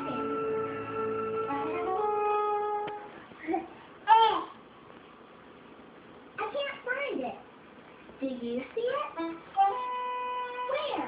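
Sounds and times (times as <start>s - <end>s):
cartoon instrumental music: 0.0s - 3.2s, 9.2s - 11.0s.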